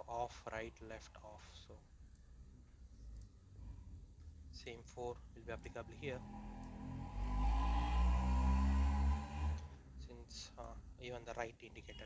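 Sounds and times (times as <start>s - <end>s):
speech: 0.0s - 1.8s, 4.6s - 6.2s, 10.0s - 12.0s
low droning hum: 2.0s - 10.2s.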